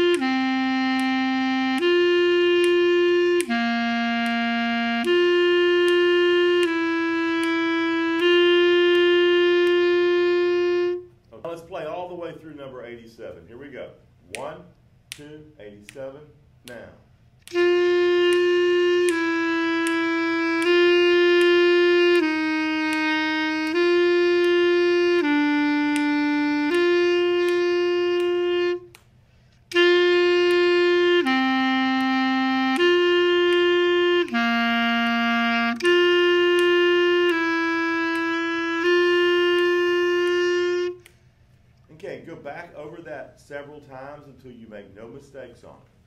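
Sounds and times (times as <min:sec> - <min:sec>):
clarinet playing sustained notes: 0:00.0 - 0:11.2, 0:17.5 - 0:41.2.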